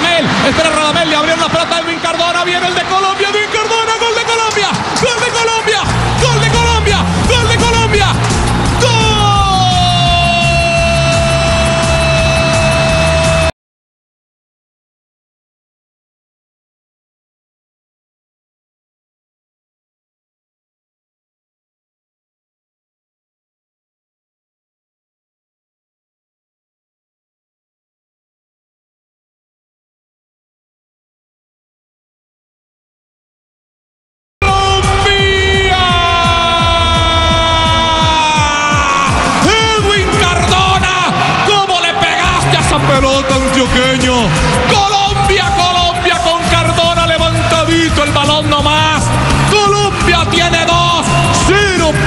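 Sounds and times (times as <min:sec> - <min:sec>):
commentator's held goal cry: 0:00.0 - 0:13.5, 0:34.4 - 0:52.0
crowd din: 0:00.0 - 0:13.5, 0:34.4 - 0:52.0
pounding bass beat: 0:05.8 - 0:13.5, 0:34.4 - 0:52.0.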